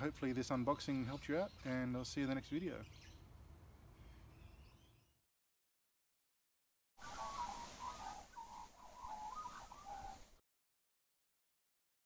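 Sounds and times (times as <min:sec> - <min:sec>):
birds chirping and trilling: 0:00.0 - 0:05.2, 0:07.0 - 0:10.4
faint outdoor background noise: 0:00.0 - 0:05.2, 0:07.0 - 0:10.4.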